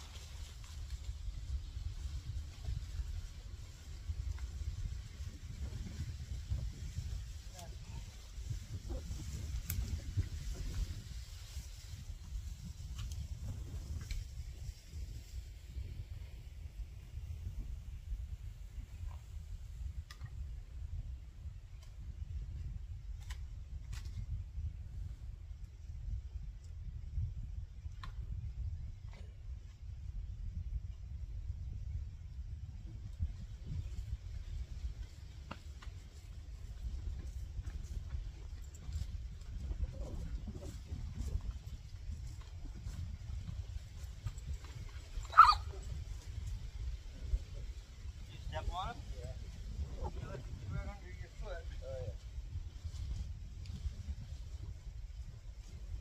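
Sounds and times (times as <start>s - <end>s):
rustle of leafy branches: 0.0s - 15.8s, 33.3s - 56.0s
wind buffeting microphone: 0.0s - 56.0s.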